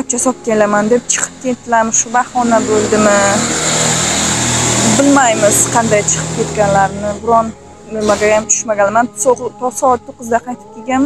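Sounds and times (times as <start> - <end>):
person speaking: 0.0 - 3.6
vehicle engine and road noise: 0.0 - 10.1.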